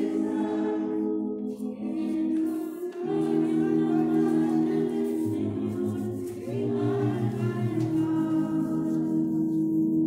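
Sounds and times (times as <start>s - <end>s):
voices singing a hymn: 0.0s - 9.6s.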